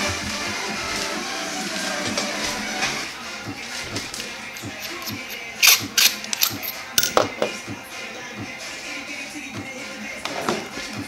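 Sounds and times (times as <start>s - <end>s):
screwdriver bits clicking: 4.6s - 7.2s.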